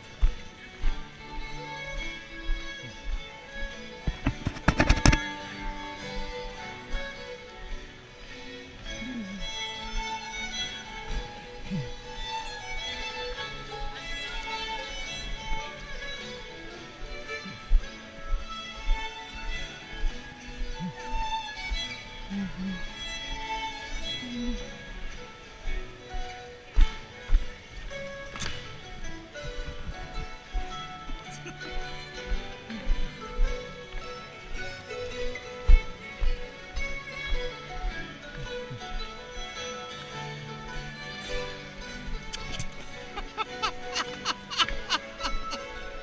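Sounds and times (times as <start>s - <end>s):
fiddle-led dance band music: 0.0s - 46.0s
dancers' voices: 41.6s - 46.0s.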